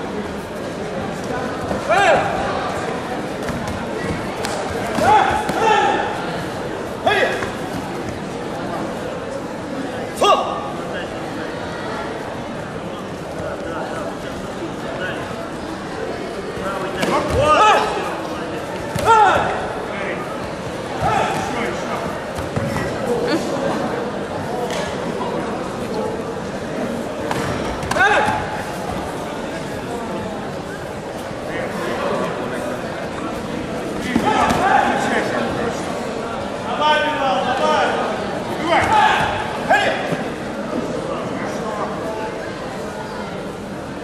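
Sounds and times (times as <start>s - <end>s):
voices in sports hall: 0.0s - 44.0s.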